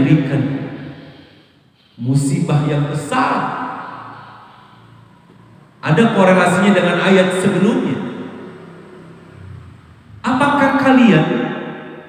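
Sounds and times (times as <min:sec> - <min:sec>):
faint hiss: 0:00.0 - 0:07.0
man's voice echoing: 0:00.0 - 0:12.0.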